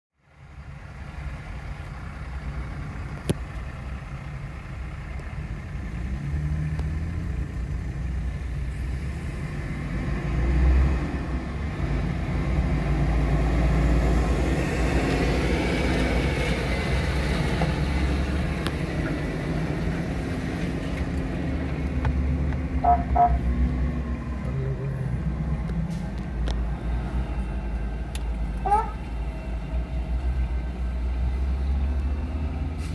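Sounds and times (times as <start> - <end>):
car engine and road noise: 0.1 - 32.9.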